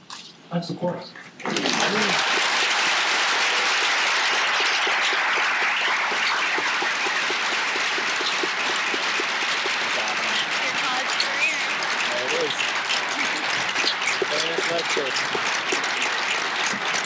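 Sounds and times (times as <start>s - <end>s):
audience applauding: 1.4s - 17.0s.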